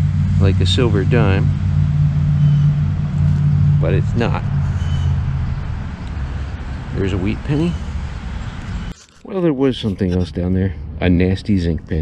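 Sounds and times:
low engine rumble: 0.0 - 12.0.

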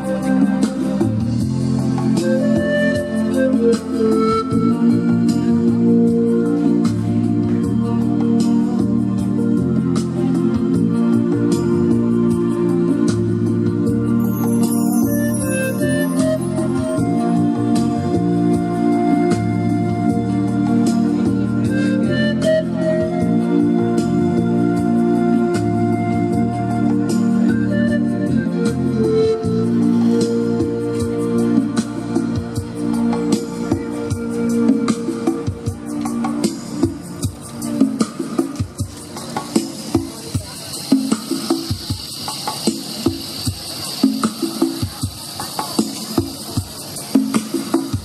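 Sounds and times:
pan flute: 0.0 - 48.0
steady drum beat: 0.5 - 7.8, 29.6 - 48.0
panpipes melody: 14.2 - 31.7
rainstick hissing patter: 40.1 - 47.9.

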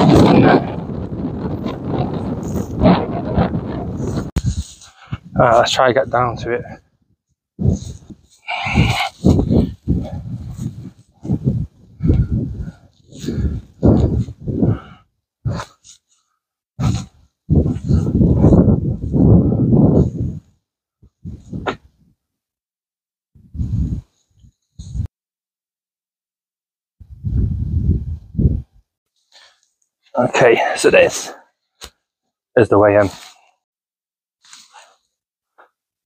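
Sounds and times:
wind buffeting microphone: 0.0 - 15.8, 16.8 - 22.1, 23.4 - 25.1, 27.0 - 28.8.

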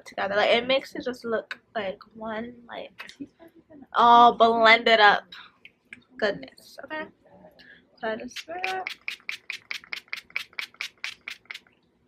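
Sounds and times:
spray bottle pump hisses: 8.4 - 11.6.

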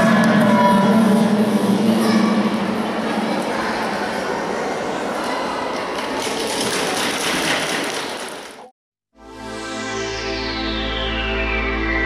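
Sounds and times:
audience applauding: 6.0 - 8.7.

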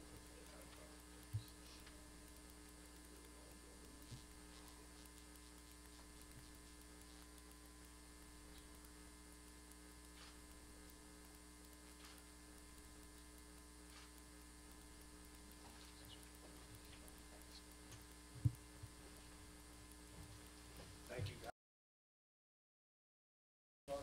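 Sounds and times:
faint mains hum: 0.0 - 21.5
faint clicks: 0.2 - 19.2.

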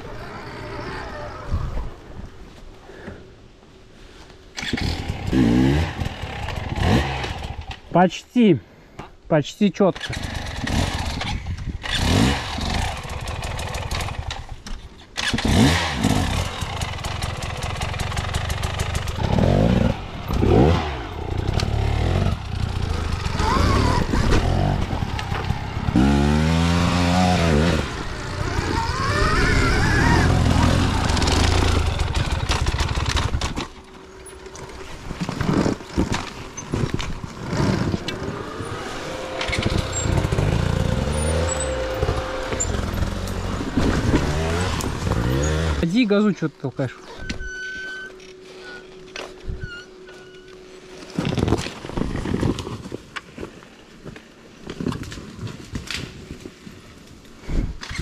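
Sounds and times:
dirt bike engine revving: 4.6 - 7.7, 10.0 - 14.4, 15.2 - 33.5, 36.8 - 46.2.

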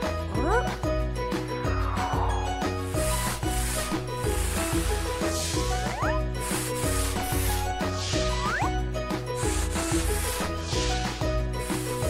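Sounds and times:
light background music: 0.0 - 12.0
cartoon paintbrush scrubbing: 2.7 - 12.0.

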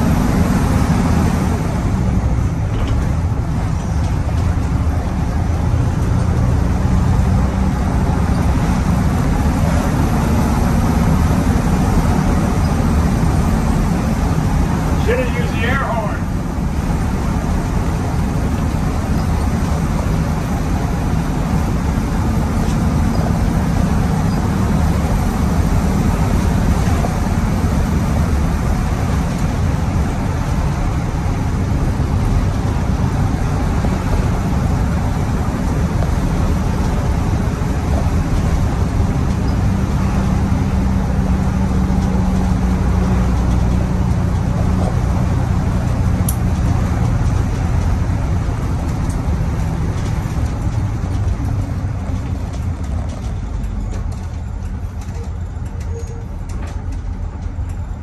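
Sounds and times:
diesel bus engine running: 0.0 - 58.0
road and tyre noise: 0.0 - 58.0.

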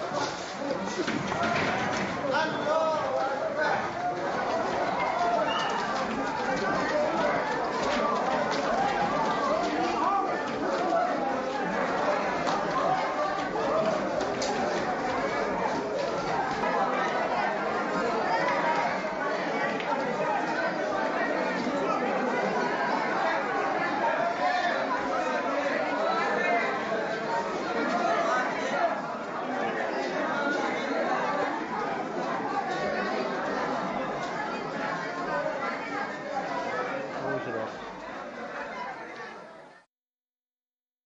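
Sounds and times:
crowd babble: 0.0 - 39.9.

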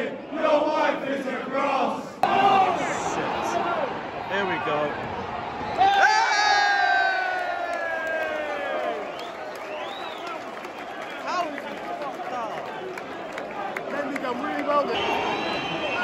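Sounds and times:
stadium crowd noise: 0.0 - 16.0
scattered shouts: 2.2 - 4.1.

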